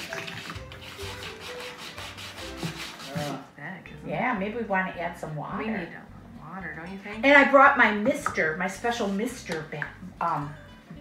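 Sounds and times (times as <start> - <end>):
faint melody: 0.0 - 11.0
hand sanding wood: 0.7 - 3.4.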